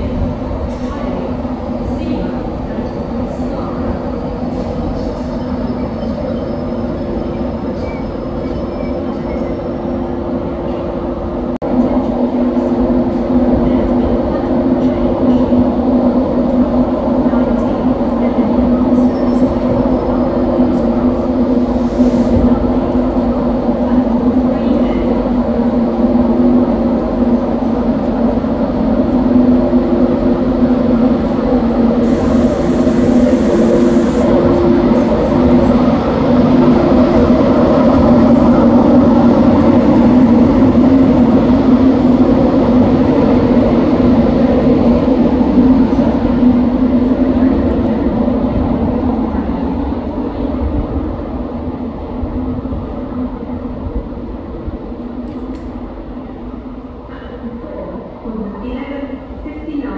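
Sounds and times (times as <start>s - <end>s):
electric locomotive droning: 0.0s - 59.9s.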